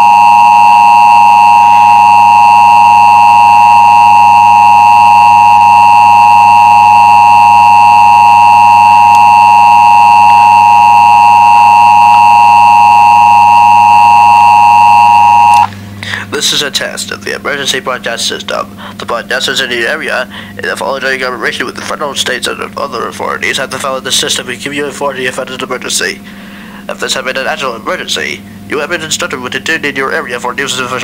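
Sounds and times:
two-tone emergency alert signal: 0.0s - 15.7s.

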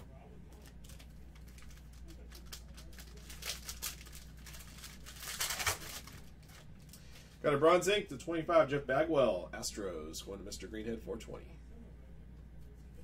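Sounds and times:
plastic wrapper crinkling and tearing: 0.5s - 7.4s.

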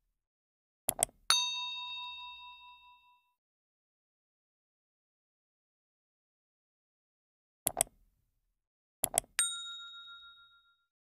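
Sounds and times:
notification bell ding: 1.3s - 3.3s, 9.4s - 10.9s.

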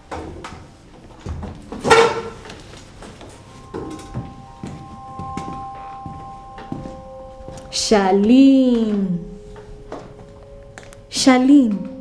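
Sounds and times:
faint background music: 0.0s - 12.0s
footsteps on hard floor: 1.0s - 11.1s.

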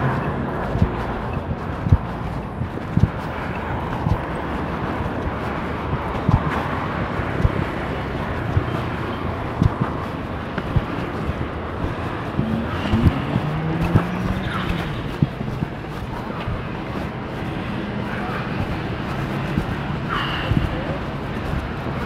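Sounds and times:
outdoor urban background noise: 0.0s - 22.0s.

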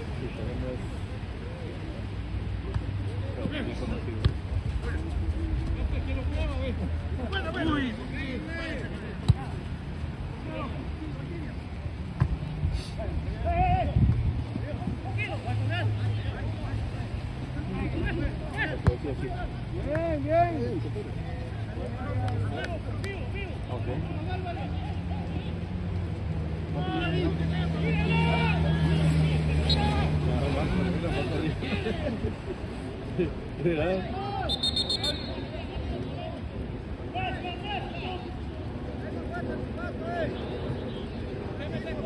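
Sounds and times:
players shouting: 17.6s - 32.2s, 33.8s - 42.0s.

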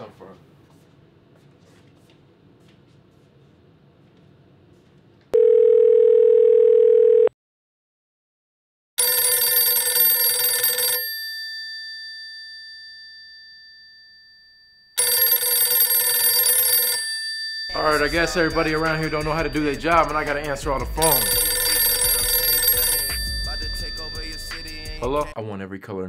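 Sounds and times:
phone bell ringtone: 5.4s - 7.3s, 9.0s - 25.4s
telephone ringback tone: 5.4s - 7.3s, 9.0s - 13.6s, 15.0s - 17.8s, 21.0s - 25.0s.

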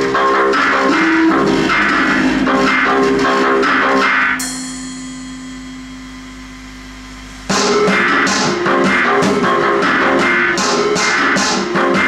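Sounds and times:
electro-punk music with drums: 0.0s - 12.0s
held low synth tone: 0.7s - 4.7s.

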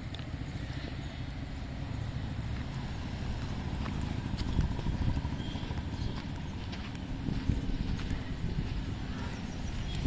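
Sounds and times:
steady low rumble: 0.0s - 10.0s
footsteps on gravel: 2.4s - 10.0s.

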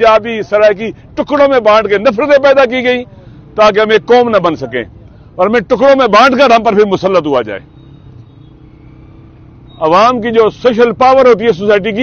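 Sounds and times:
man speaking: 0.0s - 7.6s, 9.8s - 12.0s.

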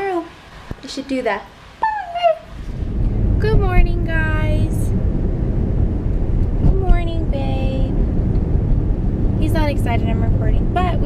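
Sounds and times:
car cabin road rumble: 2.5s - 11.0s.

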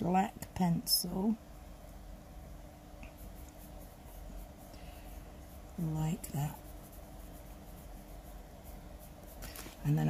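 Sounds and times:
pencil scratching on card: 3.0s - 10.0s.

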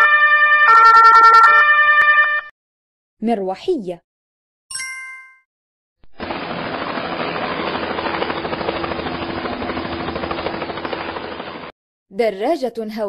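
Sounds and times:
helicopter rotor chopping: 6.1s - 11.7s.

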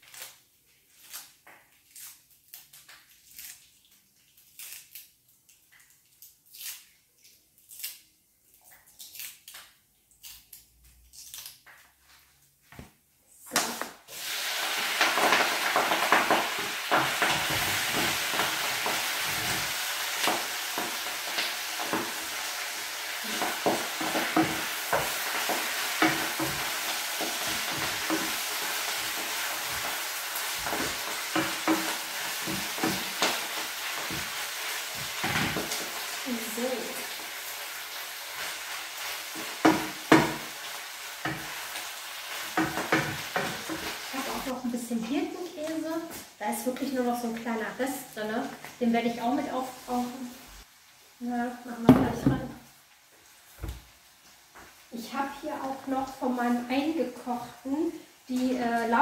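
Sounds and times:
greens sizzling in a pot: 0.0s - 6.9s, 13.5s - 59.0s
wooden spoon scraping a pot: 14.4s - 36.2s.

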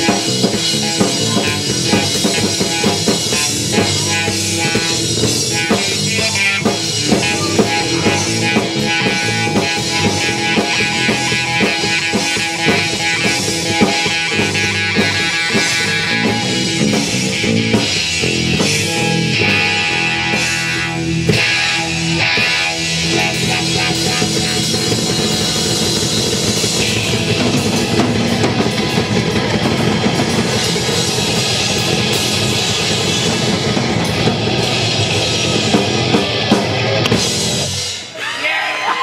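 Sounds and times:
instrumental rock band playing: 0.0s - 38.2s.

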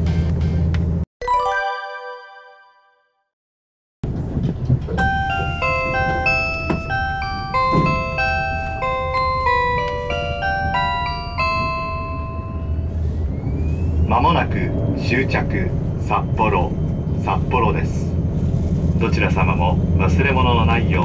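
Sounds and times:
diesel train rumbling: 0.0s - 1.0s, 4.0s - 21.0s
chime melody over public address: 1.2s - 3.0s, 5.0s - 12.9s
automated announcement: 14.0s - 18.2s.

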